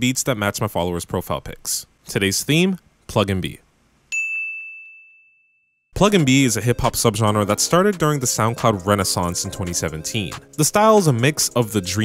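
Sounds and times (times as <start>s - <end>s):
high bell-like ding: 4.1s - 5.7s.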